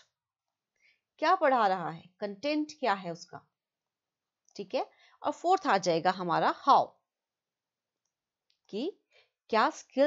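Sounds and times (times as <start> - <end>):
woman speaking: 1.2 - 3.4, 4.6 - 7.0, 8.7 - 10.0.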